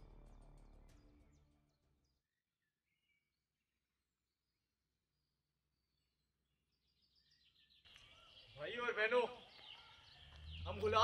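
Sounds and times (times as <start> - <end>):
birdsong: 0.0 - 11.0
faint high bird chirps: 1.0 - 11.0.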